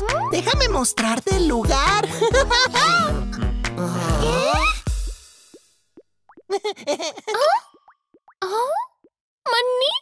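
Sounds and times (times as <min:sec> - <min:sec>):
cartoon vocal sounds: 0:02.8 - 0:04.8
plopping footstep effects: 0:07.6 - 0:09.2.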